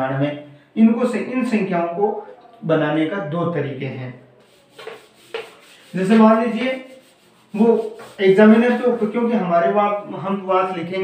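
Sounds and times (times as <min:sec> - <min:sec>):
rubbing strokes on whiteboard: 0:04.4 - 0:10.0.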